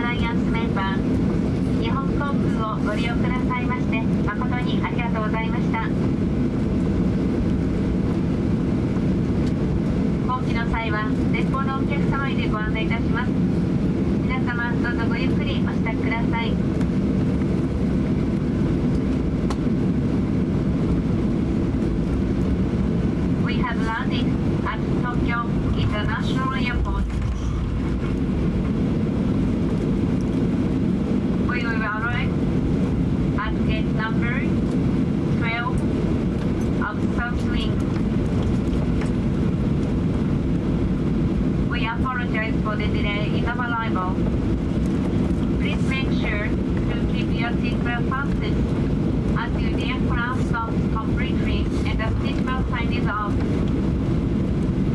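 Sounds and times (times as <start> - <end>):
airplane cabin rumble: 0.0 - 54.9
voices: 14.2 - 16.6, 23.4 - 27.3, 31.5 - 32.4, 33.4 - 34.5, 35.4 - 35.8, 36.8 - 37.8, 41.7 - 44.2, 45.6 - 48.6, 49.4 - 53.4.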